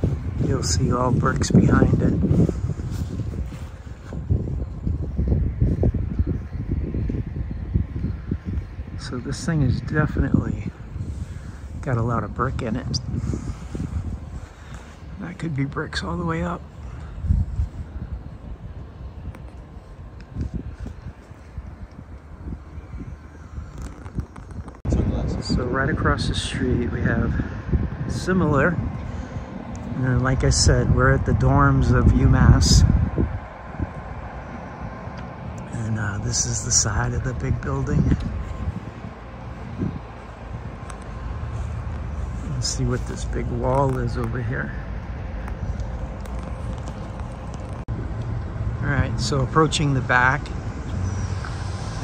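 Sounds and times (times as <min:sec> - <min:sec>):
footsteps on pavement: 0:00.0 - 0:09.8, 0:37.3 - 0:48.4
low outdoor rumble: 0:00.0 - 0:52.0.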